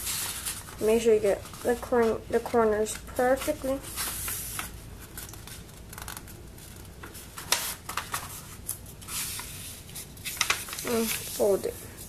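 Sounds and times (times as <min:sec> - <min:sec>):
paper rustling and crinkling: 0:00.0 - 0:12.0.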